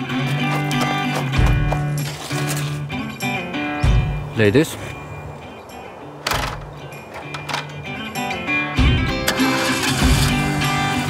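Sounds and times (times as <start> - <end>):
guitar background music: 0.0 - 11.0
car engine cranking and starting: 6.2 - 11.0.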